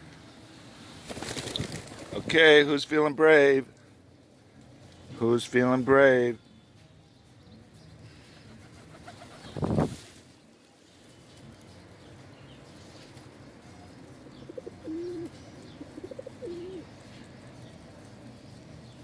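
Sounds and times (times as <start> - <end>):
wings fluttering: 1.0 - 2.4, 8.4 - 11.8
pigeons cooing: 14.2 - 17.0.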